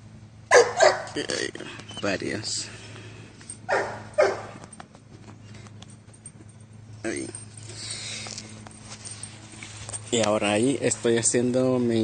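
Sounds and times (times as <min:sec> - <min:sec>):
dog barking: 0:00.5 - 0:01.2, 0:03.7 - 0:04.6.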